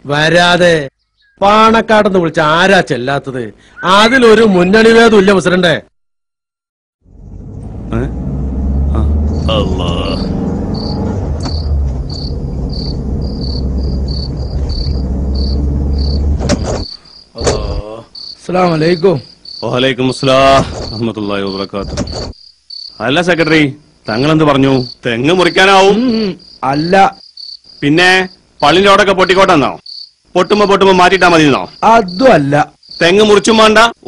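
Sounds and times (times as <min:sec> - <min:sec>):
low car engine rumble: 0:07.0 - 0:16.5
crickets chirping: 0:09.1 - 0:34.0.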